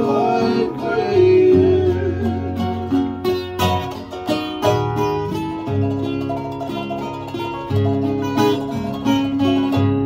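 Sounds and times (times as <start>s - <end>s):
ukulele and guitars strumming: 0.0s - 10.0s.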